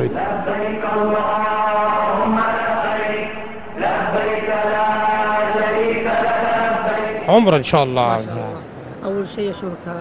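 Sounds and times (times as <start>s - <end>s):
vocal chanting in held notes: 0.0s - 7.5s.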